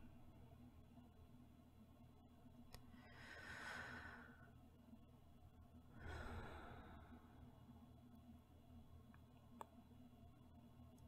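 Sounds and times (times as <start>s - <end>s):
woman's soft sleeping breath: 2.9s - 4.6s, 5.9s - 7.5s.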